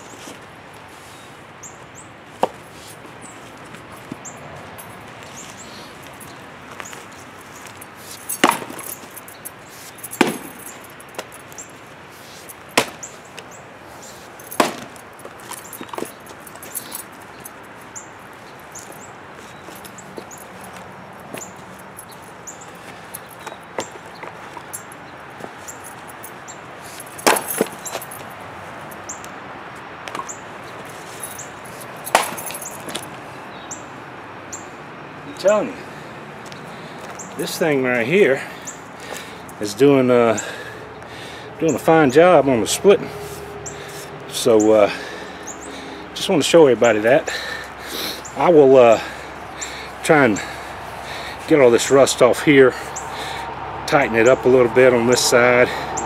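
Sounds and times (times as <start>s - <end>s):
axe chopping wood: 8.4s - 8.8s, 10.2s - 10.6s, 12.8s - 13.0s, 14.6s - 15.0s, 27.2s - 27.8s, 32.1s - 32.4s.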